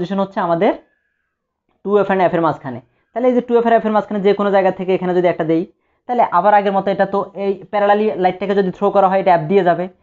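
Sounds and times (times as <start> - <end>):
man speaking: 1.8 - 10.0.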